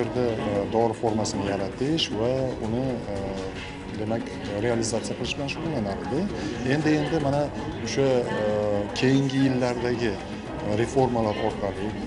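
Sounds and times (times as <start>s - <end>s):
man's voice: 0.0s - 12.0s
soft background music: 0.0s - 12.0s.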